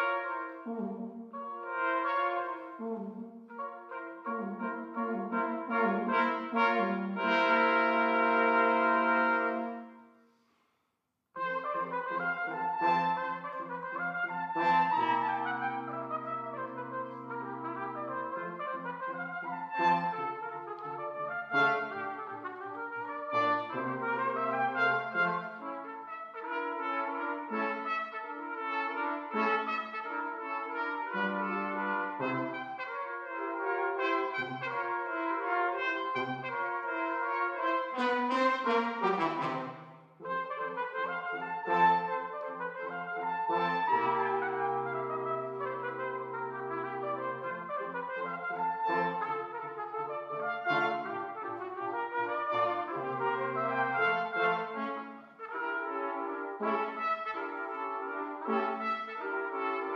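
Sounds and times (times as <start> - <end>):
brass quintet playing: 0.0 - 10.1, 11.4 - 59.9.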